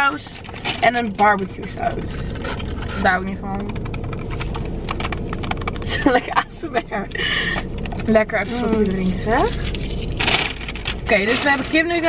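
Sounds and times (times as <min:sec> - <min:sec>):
food wrapper crinkling: 0:08.7 - 0:11.8.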